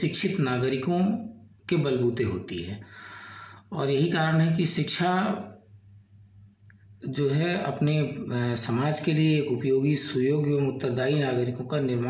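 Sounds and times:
man speaking: 0.0s - 2.8s, 3.7s - 5.5s, 7.0s - 12.0s.

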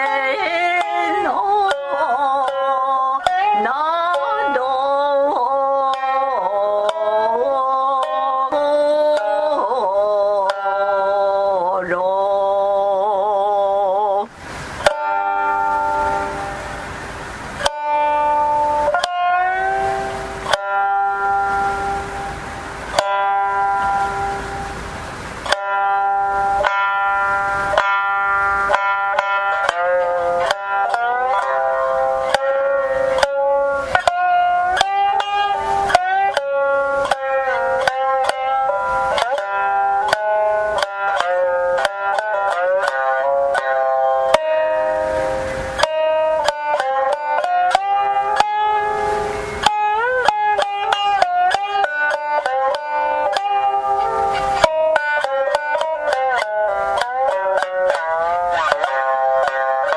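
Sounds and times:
shamisen plucked: 0.0s - 59.9s.

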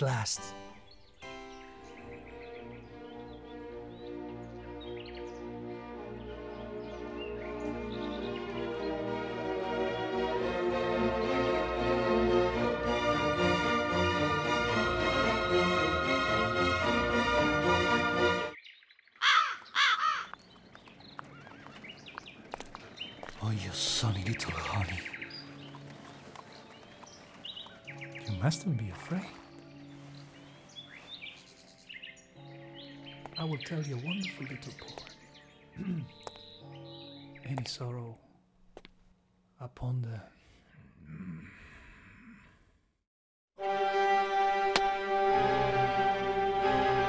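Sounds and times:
person sighing: 35.8s - 36.2s, 41.0s - 42.8s.

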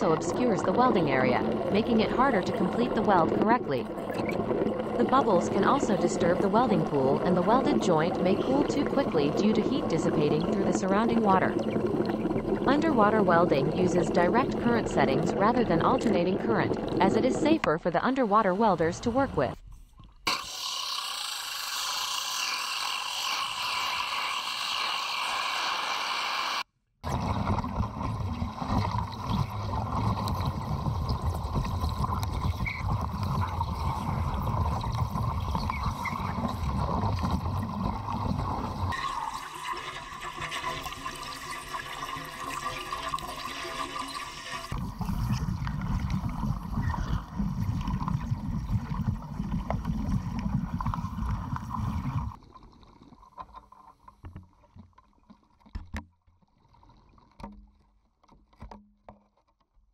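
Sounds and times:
underwater welding crackling and bubbling: 0.0s - 57.4s.

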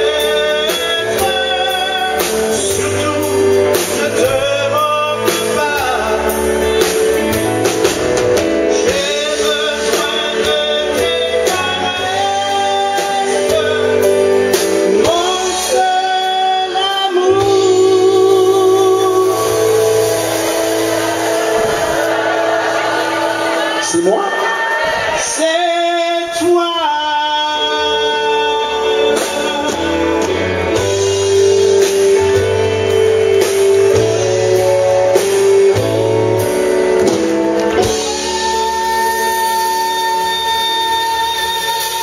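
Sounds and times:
man singing long high note: 8.7s - 30.2s, 37.9s - 42.0s.

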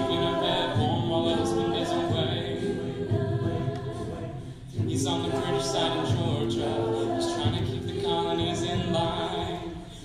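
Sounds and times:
a cappella group singing chords: 0.0s - 10.0s.

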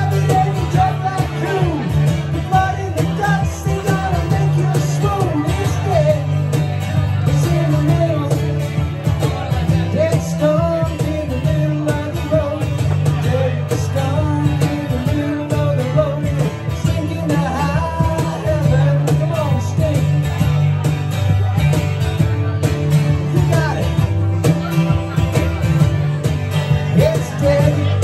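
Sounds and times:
man singing: 0.0s - 21.6s, 22.4s - 28.0s
strummed acoustic guitar: 0.0s - 28.0s.

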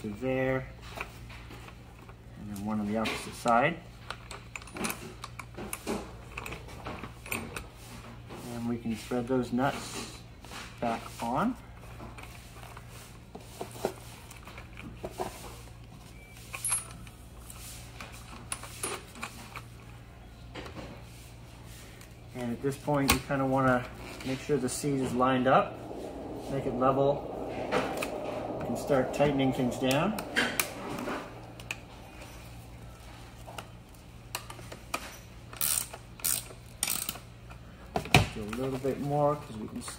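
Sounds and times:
faint low hum: 21.9s - 34.6s.

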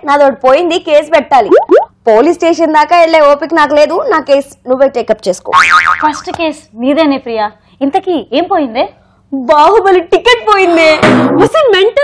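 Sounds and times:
comic boing sound effect: 1.5s - 1.9s, 5.6s - 6.3s.

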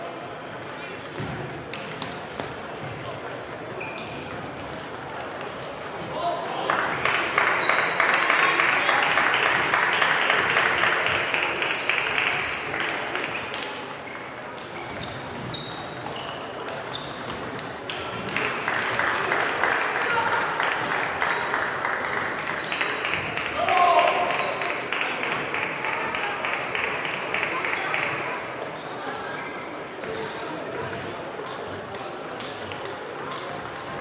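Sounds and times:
murmur of voices: 0.0s - 34.0s
applause: 6.7s - 13.1s, 18.3s - 28.2s.

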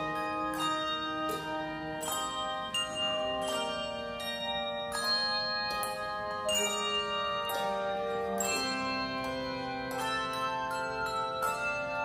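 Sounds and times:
handbell choir ringing chords: 0.0s - 12.0s.

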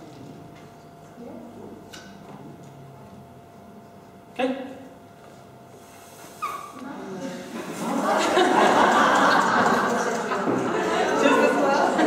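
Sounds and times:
squeaky puff through straw: 6.0s - 6.8s.

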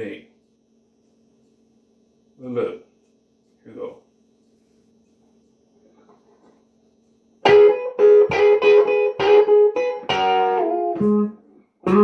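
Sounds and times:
electric guitar playing blues: 7.4s - 12.0s.

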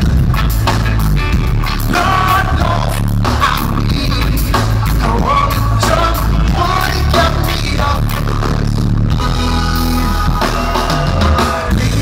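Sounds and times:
bass guitar: 0.0s - 12.0s
drums: 0.0s - 12.0s
electric guitar: 0.0s - 12.0s.

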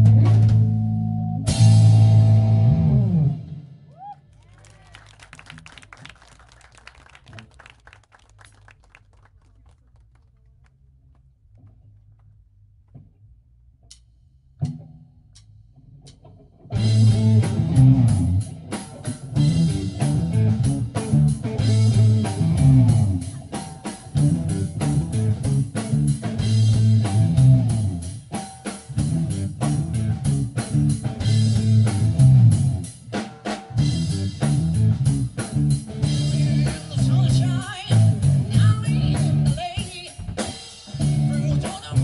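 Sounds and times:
rock band playing: 0.0s - 3.8s, 16.2s - 42.0s.

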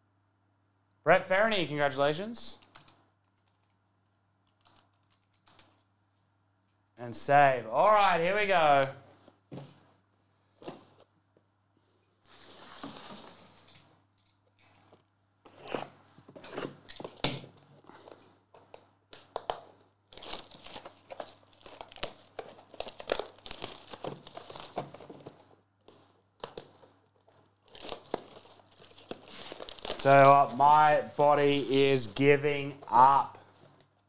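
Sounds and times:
plastic shrink-wrap tearing: 19.2s - 25.1s, 25.9s - 31.8s.

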